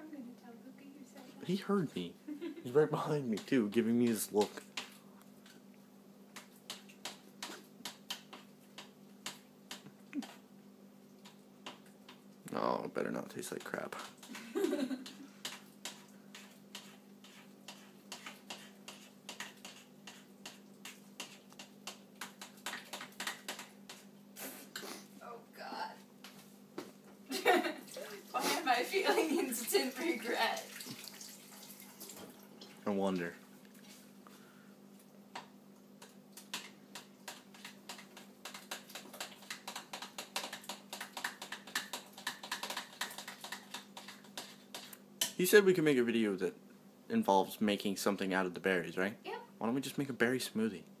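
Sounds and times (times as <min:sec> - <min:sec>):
faint steady hum: 0:00.0 - 0:51.0
wet clicks and squishes of mixing: 0:03.0 - 0:10.4, 0:11.0 - 0:24.1, 0:35.0 - 0:45.4.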